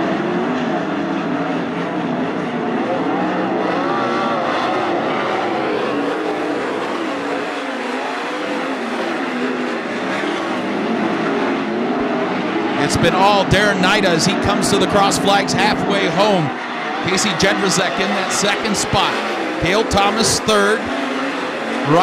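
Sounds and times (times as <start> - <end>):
racing car engines: 0.0 - 22.0.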